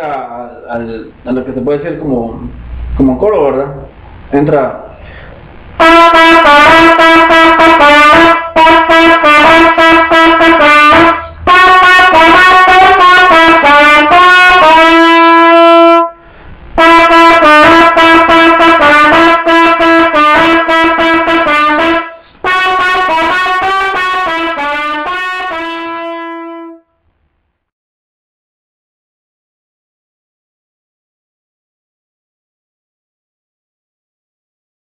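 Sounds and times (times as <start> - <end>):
solo trumpet melody: 5.8 - 16.2, 16.8 - 27.0.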